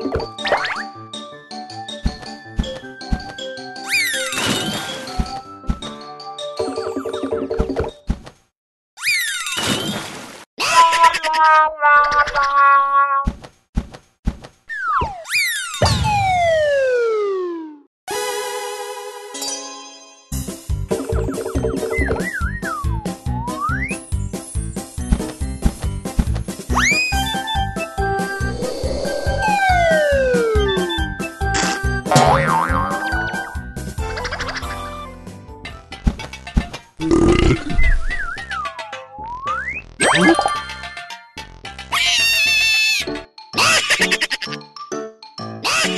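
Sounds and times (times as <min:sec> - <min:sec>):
cartoon background music: 0:00.0 - 0:08.1, 0:14.7 - 0:45.9
springy boing sound effect: 0:32.1 - 0:33.1.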